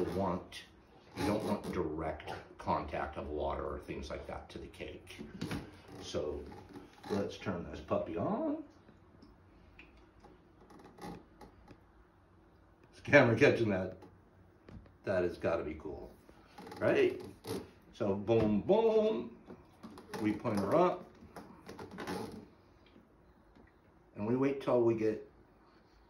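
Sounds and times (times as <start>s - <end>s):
low steady background noise: 0.0s - 26.0s
low steady hum: 0.0s - 26.0s.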